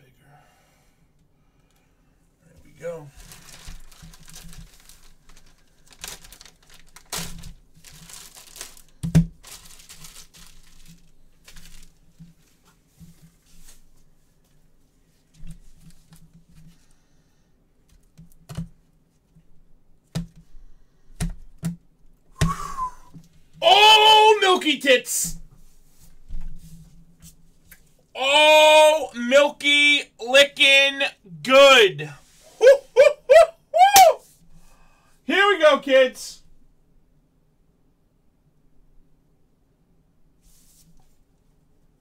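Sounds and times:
plastic wrapper tearing and crinkling: 3.2 - 12.1.

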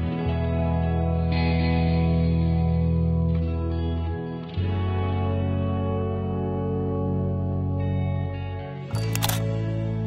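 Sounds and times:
gentle background music: 0.0 - 10.0
camera shutter clicking: 9.0 - 9.5.

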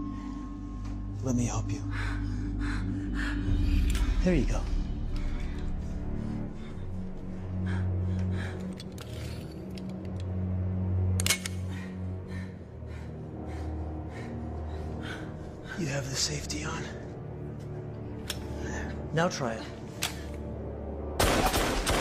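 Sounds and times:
tense droning film score: 0.0 - 22.0.

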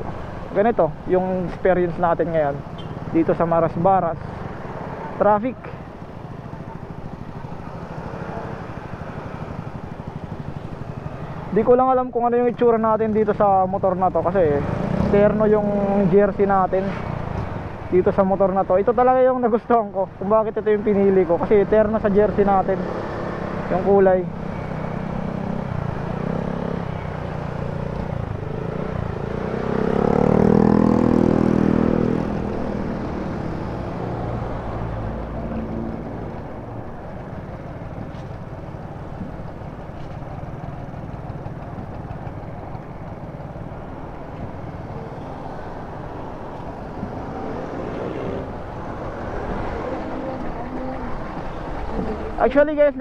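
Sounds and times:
traffic rumble: 0.0 - 53.0
nearby engine revving: 27.8 - 34.3.

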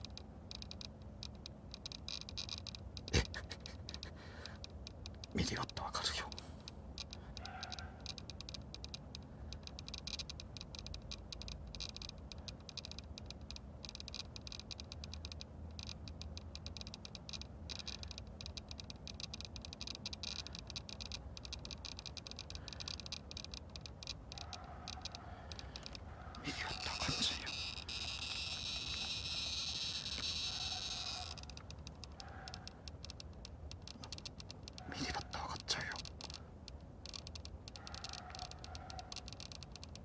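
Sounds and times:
chorus of fast ticking calls: 0.0 - 40.0.

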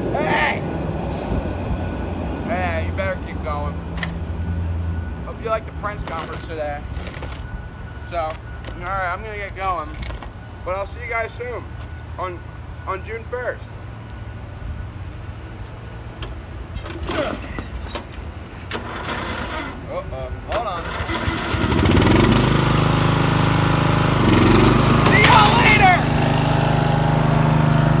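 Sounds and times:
man calling out: 0.0 - 0.7, 25.0 - 26.2
riding lawn mower engine: 16.7 - 28.0.

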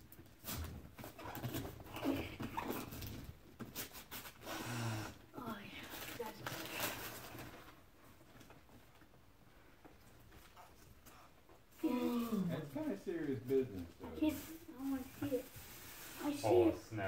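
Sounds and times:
wrapping paper crinkling: 5.8 - 8.0, 11.8 - 16.7.

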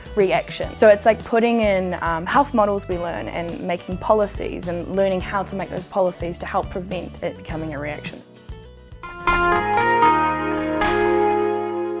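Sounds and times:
bell-like chime notes: 9.0 - 12.0.

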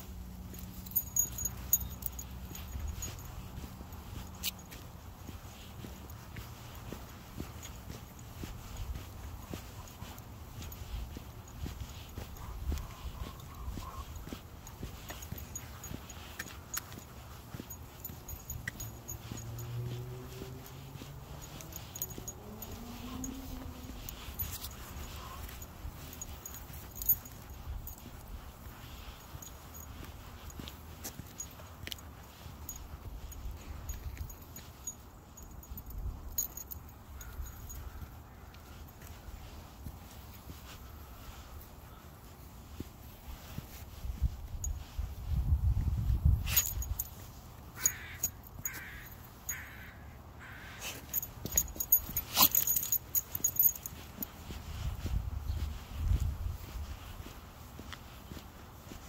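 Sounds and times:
dog collar jingling: 0.0 - 59.0.

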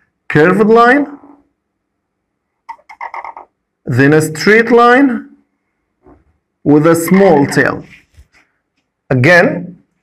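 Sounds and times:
marker squeaking on whiteboard: 2.7 - 3.6.

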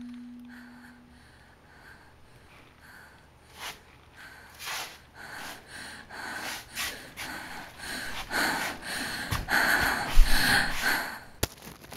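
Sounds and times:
person breathing hard: 0.4 - 11.4.

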